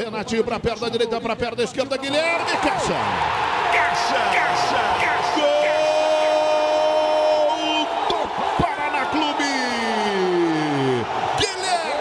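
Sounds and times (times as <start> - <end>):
commentator's long goal shout: 2.4 - 12.0.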